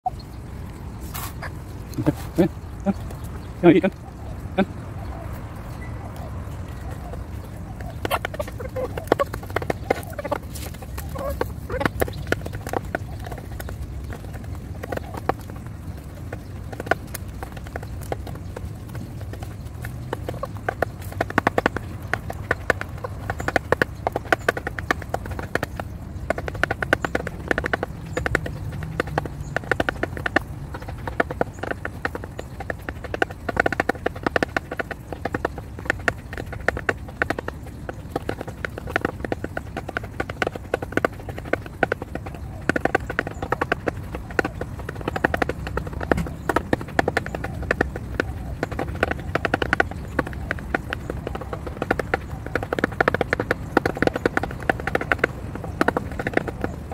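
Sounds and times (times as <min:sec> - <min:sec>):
beaks clicking on plastic bowl: 0:07.2 - 0:56.9.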